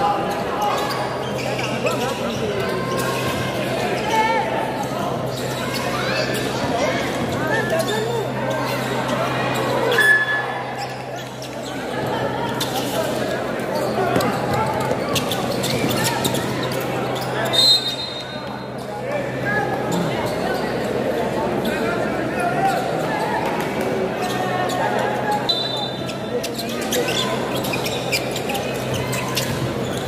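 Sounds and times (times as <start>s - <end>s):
crowd voices: 0.0s - 30.0s
short high squeaks: 7.7s - 11.6s.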